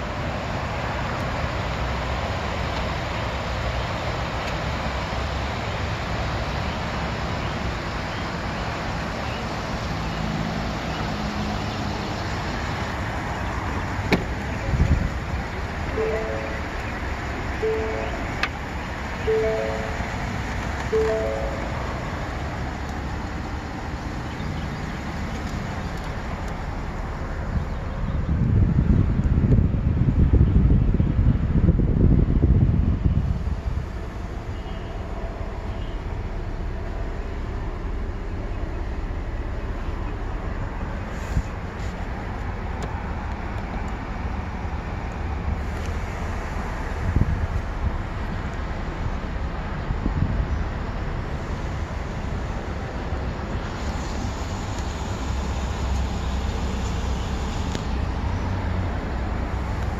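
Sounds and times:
outdoor background noise: 0.0 - 59.9
low steady hum in vehicle cab: 12.2 - 59.9.

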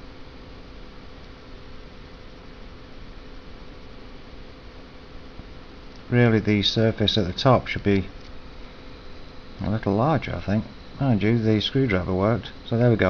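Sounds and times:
faint low hum: 0.0 - 13.0
steady background hiss: 0.0 - 13.0.

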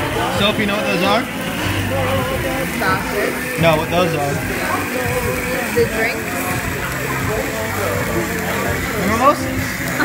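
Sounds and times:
background music: 0.0 - 10.0
diners talking: 0.0 - 10.0.

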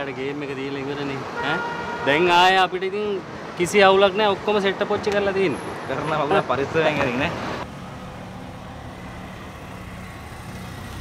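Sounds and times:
man talking loudly: 0.0 - 7.4
road vehicle humming: 0.0 - 11.0.

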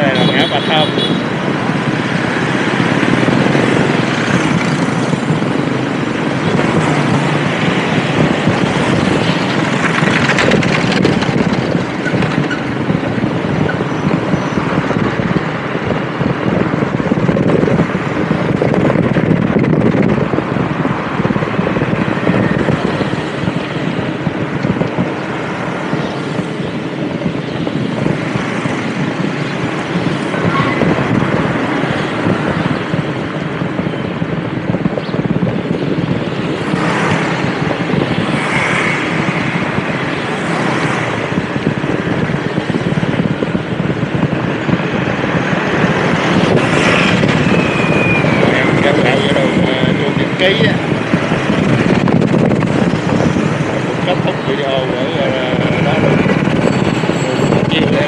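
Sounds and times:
motorbikes passing by: 0.0 - 58.0
rush of moving air: 1.2 - 58.0.

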